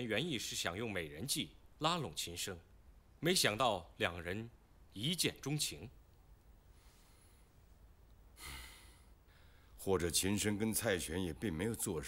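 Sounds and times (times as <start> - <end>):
man speaking: 0.0 - 6.0, 9.8 - 12.0
man breathing in: 8.4 - 9.8.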